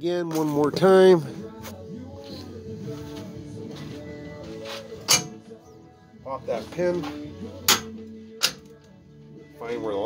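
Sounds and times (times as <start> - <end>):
background music: 0.0 - 10.0
metal ladder clank: 5.1 - 5.4.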